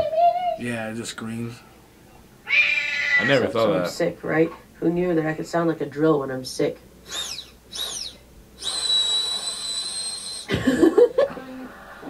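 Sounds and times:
girl laughing: 0.0 - 0.6, 10.4 - 12.0.

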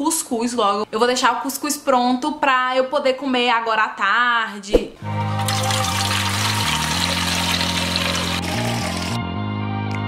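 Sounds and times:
background music: 5.0 - 10.0
tap water pouring into metal pot: 5.4 - 9.2.

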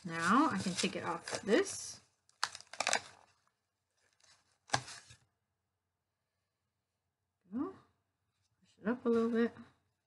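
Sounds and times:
cardboard rustling: 0.0 - 5.2.

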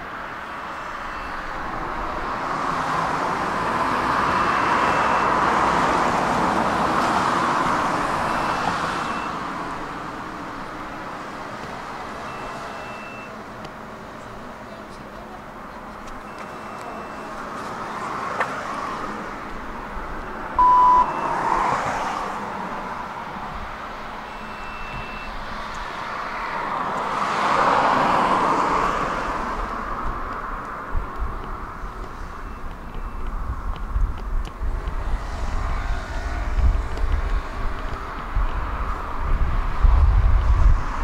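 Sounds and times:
distant vehicle rumble: 0.0 - 41.0
road traffic noise: 0.0 - 41.0
card reader beep: 8.3 - 9.4, 12.3 - 13.4, 16.3 - 17.4, 20.6 - 21.4, 24.3 - 25.3
wind gusting against microphone: 27.8 - 41.0.

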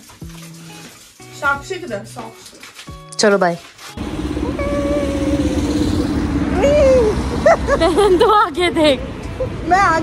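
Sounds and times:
street traffic rumble: 4.0 - 10.0.

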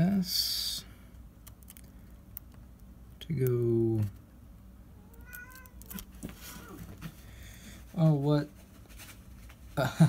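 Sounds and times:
cat meowing: 4.9 - 6.9.

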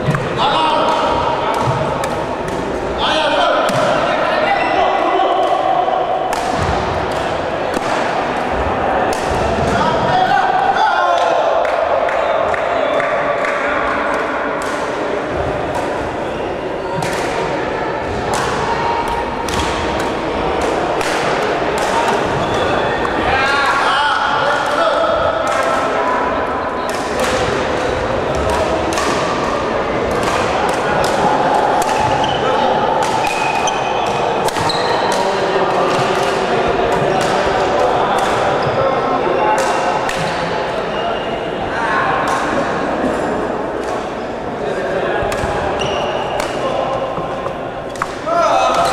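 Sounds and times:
rackets striking shuttlecocks: 0.0 - 3.0, 6.3 - 8.4, 18.1 - 23.2, 26.9 - 38.6, 45.2 - 48.9
crowd chatter in sports hall: 0.0 - 48.9.

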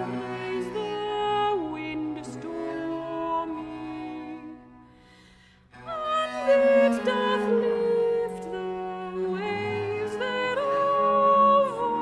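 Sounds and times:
soprano singing: 0.0 - 12.0.

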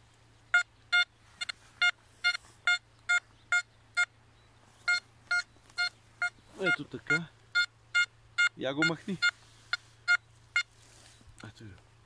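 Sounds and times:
metal detector beeps: 0.6 - 4.1, 4.8 - 10.7.

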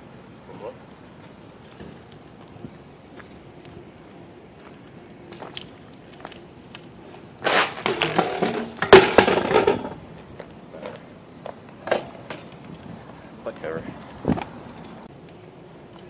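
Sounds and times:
bike clattering on concrete: 7.1 - 15.0.

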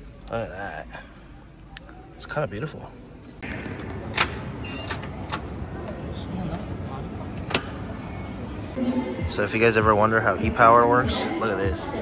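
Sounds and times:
faint voices of visitors: 0.0 - 12.0.

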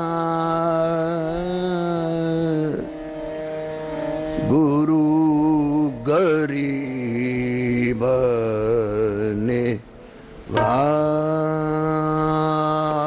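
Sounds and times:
harmonium drone: 0.0 - 13.0
man singing melismatic phrases: 4.4 - 9.9, 10.5 - 13.0.

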